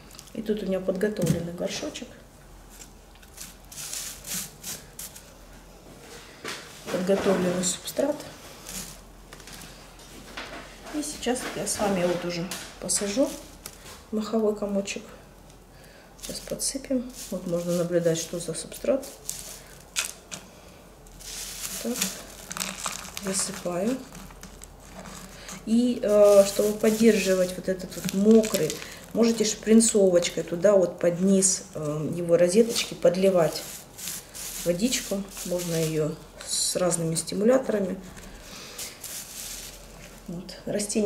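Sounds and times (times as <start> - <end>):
plastic pot rustling and scraping: 2.7 - 5.4, 6.8 - 14.0, 16.2 - 20.2, 21.1 - 29.8, 32.3 - 36.5, 38.4 - 40.4.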